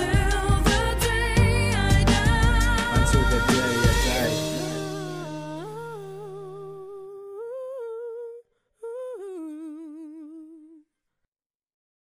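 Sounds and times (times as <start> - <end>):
person humming with vibrato: 3.6 - 10.8.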